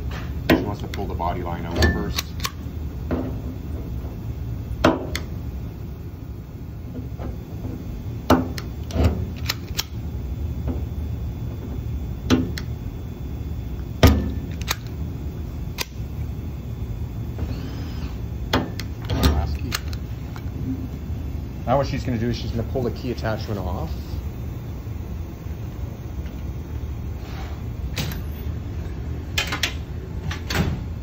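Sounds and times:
steady low hum: 0.0s - 31.0s
stud welder snapping: 1.8s - 2.7s, 4.8s - 5.4s, 8.3s - 10.0s.

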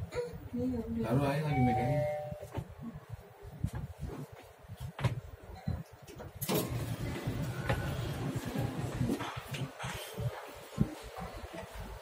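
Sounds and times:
surrounding noise: 0.0s - 12.0s
elevator doors sliding open: 6.4s - 9.8s
elevator low rumble: 6.4s - 12.0s.

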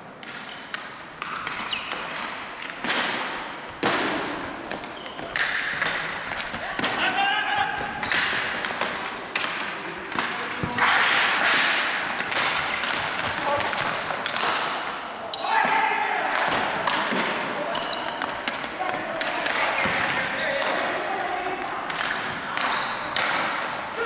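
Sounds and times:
sneakers squeaking: 0.0s - 10.8s, 12.2s - 20.6s, 22.2s - 23.2s
sticks clacking against ball: 0.2s - 7.1s
players shouting: 3.8s - 8.6s, 13.3s - 21.8s.

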